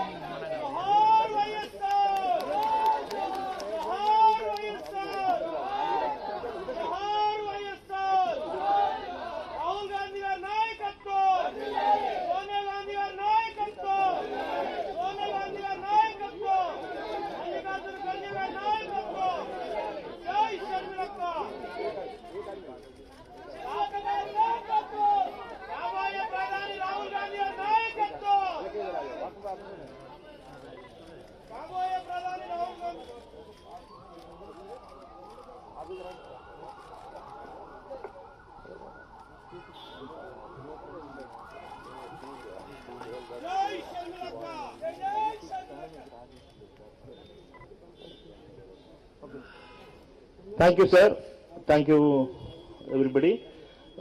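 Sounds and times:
chatter of many voices: 0.0 - 54.0
people talking over one another: 0.0 - 54.0.

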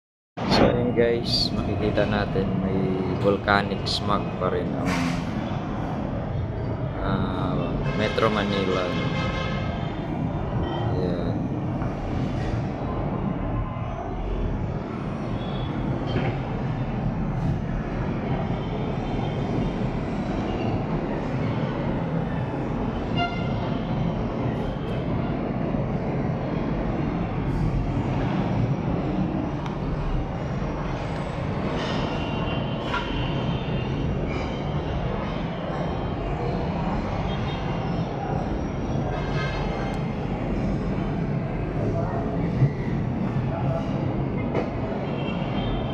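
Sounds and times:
distant city traffic rumble: 0.4 - 45.9.

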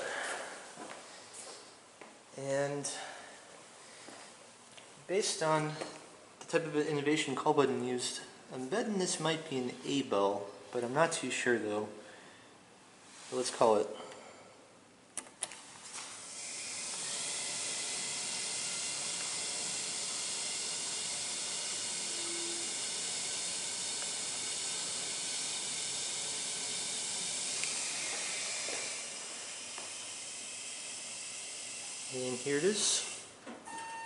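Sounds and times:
hydraulic elevator hiss: 16.2 - 33.3.

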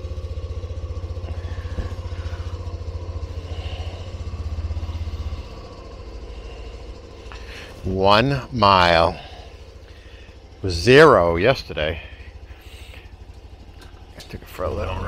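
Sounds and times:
motorcycle engine idling: 0.0 - 15.0.

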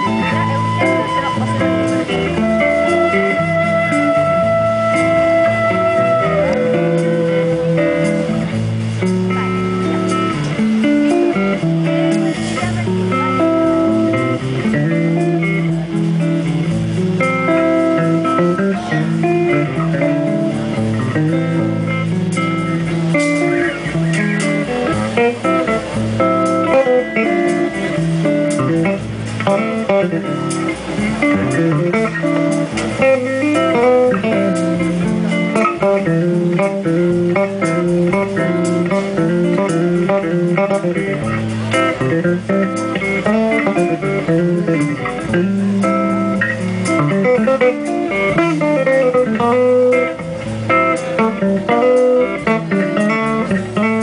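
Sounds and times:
bass guitar: 0.0 - 54.0
light drums: 0.0 - 54.0
plucked guitar solo: 0.0 - 54.0.

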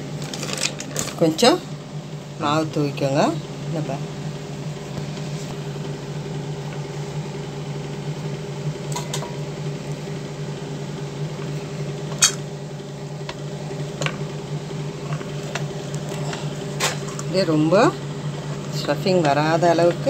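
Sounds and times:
low mechanical hum: 0.0 - 20.0.

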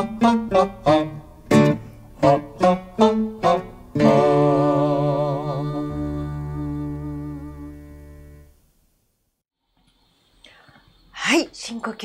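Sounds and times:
keyboard and guitar chord: 0.0 - 8.5.

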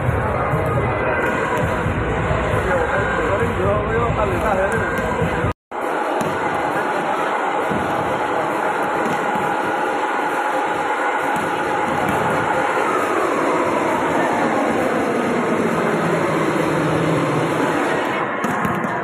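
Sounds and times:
crowd din in sports hall: 0.0 - 19.0
faint music or chanting: 0.0 - 19.0.

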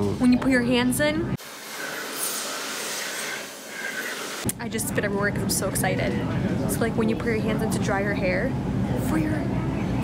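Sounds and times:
hand dryer rushing air: 1.4 - 4.5.

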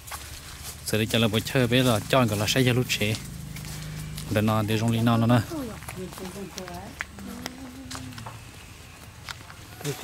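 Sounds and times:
faint background noise: 0.0 - 10.0.

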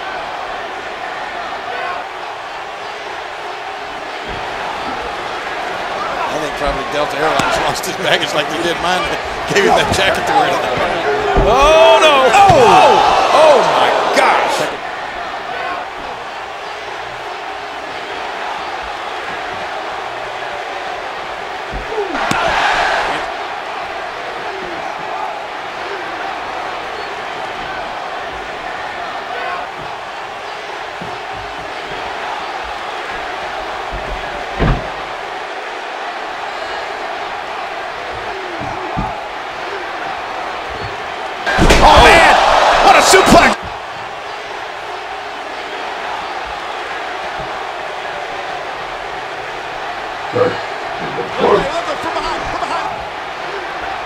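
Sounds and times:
knocks: 30.8 - 35.2
bodies thumping onto a mattress: 30.9 - 35.2.

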